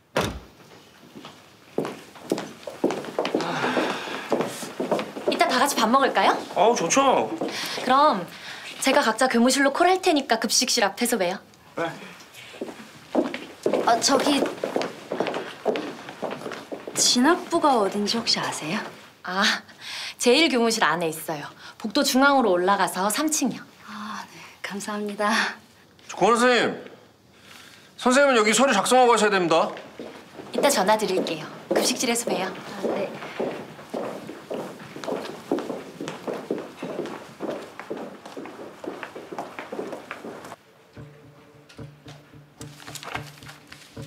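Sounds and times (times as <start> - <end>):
footsteps on hard floor: 0.4 - 9.4, 12.4 - 19.0, 29.7 - 44.0.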